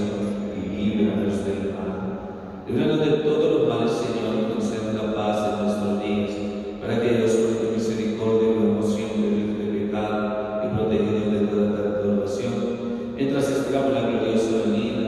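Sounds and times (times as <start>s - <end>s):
man chanting a prayer: 0.0s - 2.1s, 2.7s - 15.0s.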